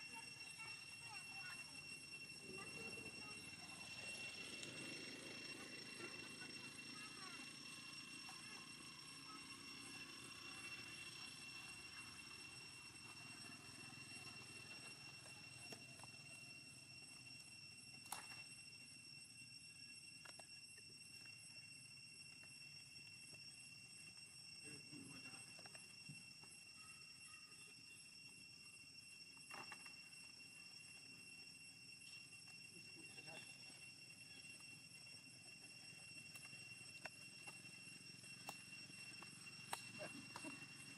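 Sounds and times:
steady high whine: 0.0 - 40.9.

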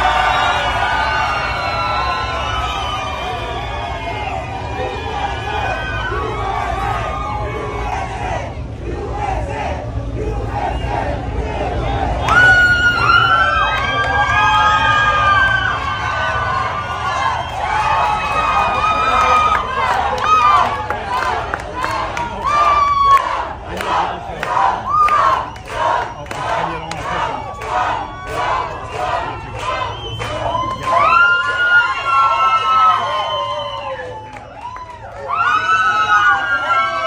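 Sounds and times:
crowd cheering and screaming: 0.0 - 37.0
rhythmic clapping: 12.2 - 33.2, 33.8 - 35.3.

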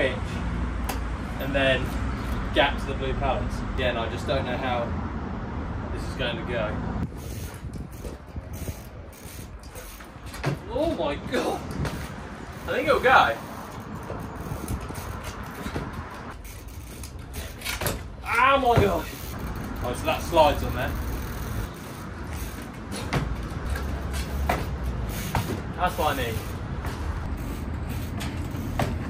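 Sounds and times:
road traffic rumble: 0.0 - 29.0
bike knocking onto wooden pallets: 9.6 - 12.1, 17.3 - 20.3, 22.4 - 25.8, 28.1 - 29.0.

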